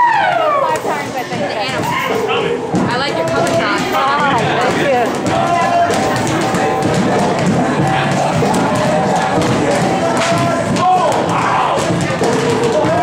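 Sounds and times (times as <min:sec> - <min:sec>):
background music: 0:00.0 - 0:13.0
crowd voices: 0:00.0 - 0:13.0
weighted balls thudding on concrete: 0:00.4 - 0:13.0.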